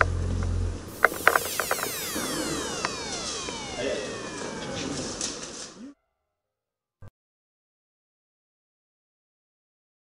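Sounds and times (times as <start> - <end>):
pitched whine falling in pitch: 0.5 - 6.2
workshop noise: 0.8 - 6.0.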